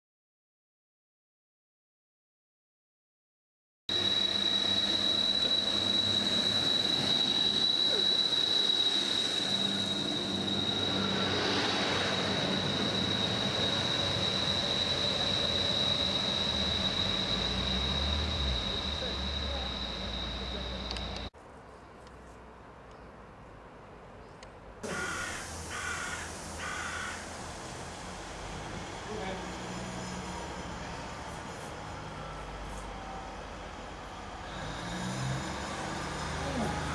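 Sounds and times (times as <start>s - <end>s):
diesel train engines running: 3.9s - 21.3s, 24.8s - 36.9s
high-pitched whine: 3.9s - 21.3s, 24.8s - 36.9s
crow cawing: 24.9s - 27.4s.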